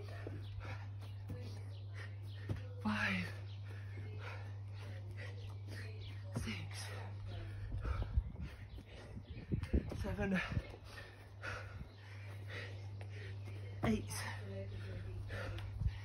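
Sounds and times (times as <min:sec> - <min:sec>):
man breathing hard: 0:00.0 - 0:02.6, 0:03.3 - 0:09.8, 0:10.4 - 0:16.0
steady low hum: 0:00.0 - 0:16.0.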